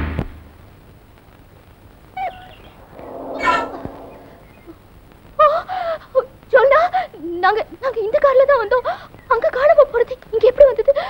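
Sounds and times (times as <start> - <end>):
bird calls: 2.3 - 4.7.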